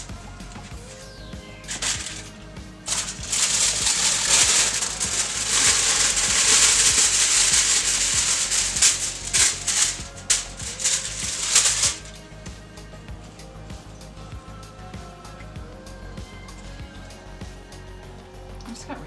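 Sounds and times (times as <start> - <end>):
background music: 0.0 - 19.0
plastic bag crinkling: 1.7 - 12.2
fries clicking into skillet: 2.9 - 12.1.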